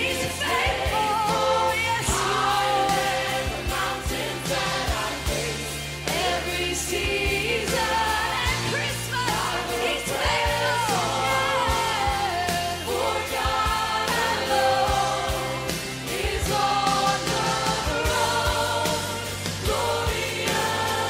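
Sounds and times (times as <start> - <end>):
band with bass and beat: 0.0 - 21.0
person singing worship song: 0.0 - 21.0.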